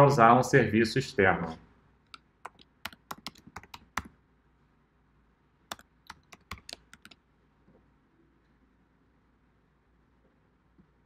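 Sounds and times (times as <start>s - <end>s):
fast typing on keyboard: 2.4s - 4.1s, 5.7s - 7.2s.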